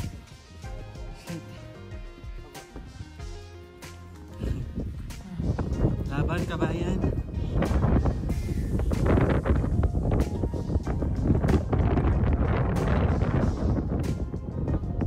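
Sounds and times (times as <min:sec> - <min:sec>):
wind on microphone: 0:00.0 - 0:00.4, 0:04.4 - 0:15.0
background music: 0:00.0 - 0:15.0.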